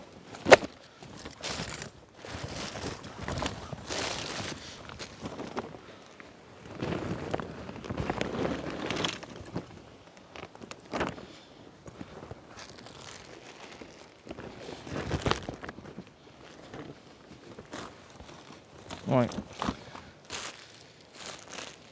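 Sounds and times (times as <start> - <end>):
bag rustling and scraping: 0.3 - 11.3, 12.1 - 21.9
footsteps on rough ground: 0.3 - 21.9.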